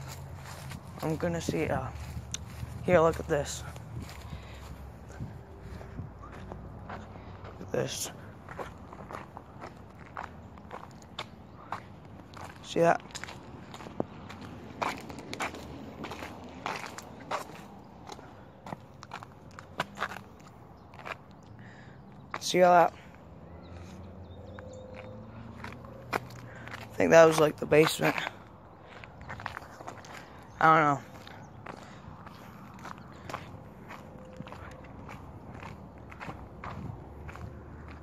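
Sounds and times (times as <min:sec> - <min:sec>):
footsteps on gritty concrete: 0:00.0 - 0:38.0.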